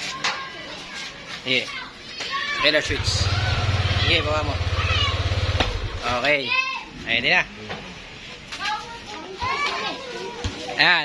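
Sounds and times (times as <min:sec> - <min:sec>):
voices talking: 0:00.4 - 0:10.8.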